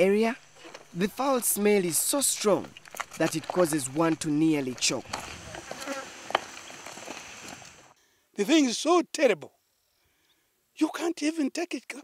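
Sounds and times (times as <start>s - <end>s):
insects buzzing: 0.0s - 8.0s.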